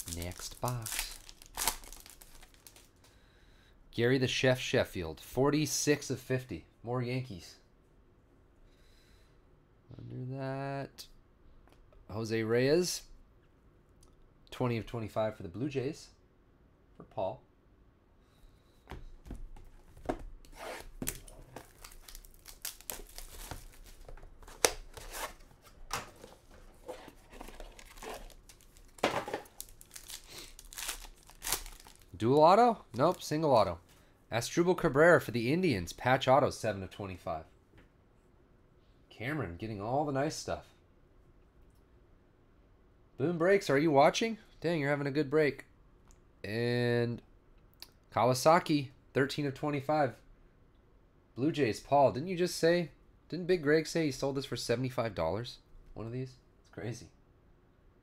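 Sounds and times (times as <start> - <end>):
foil wrapper crinkling: 0.0 - 3.0, 21.1 - 25.2, 27.4 - 32.3
cardboard box being opened: 26.4 - 28.4.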